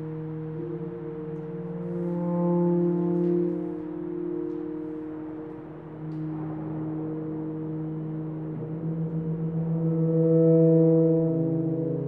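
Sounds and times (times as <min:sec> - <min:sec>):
tuba trio low chords: 0:00.0 - 0:12.0.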